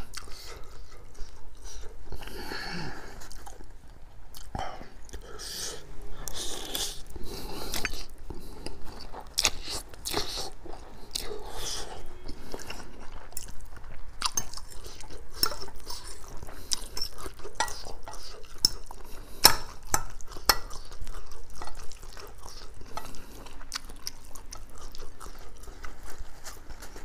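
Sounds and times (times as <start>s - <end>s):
wet chewing: 6.2s - 27.0s.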